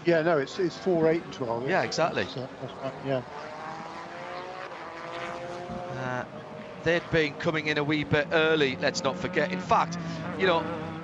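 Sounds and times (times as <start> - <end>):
race car engine running: 2.5 - 11.0.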